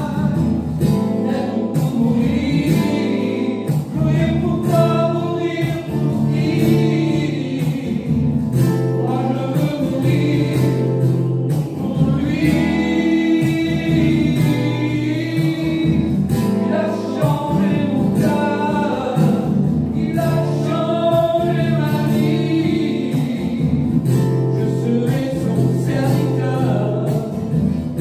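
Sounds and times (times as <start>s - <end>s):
group singing a hymn: 1.1s - 28.0s.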